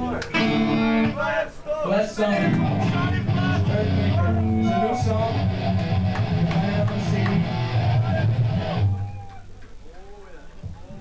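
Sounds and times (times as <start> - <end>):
band with distorted electric guitars: 0.0 - 1.2, 2.5 - 9.1
crowd voices: 0.0 - 11.0.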